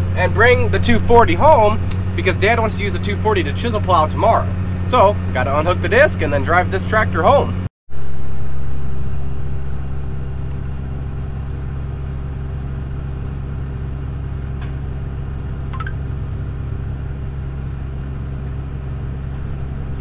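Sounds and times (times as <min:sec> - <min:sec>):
tractor engine humming: 0:00.0 - 0:20.0.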